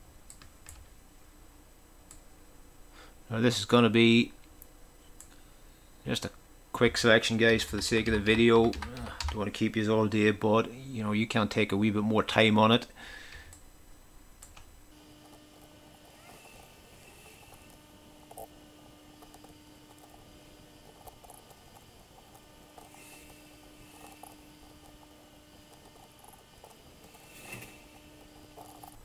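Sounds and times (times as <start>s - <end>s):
faint steady hum: 0.0s - 29.0s
computer mouse clicking: 0.3s - 0.8s.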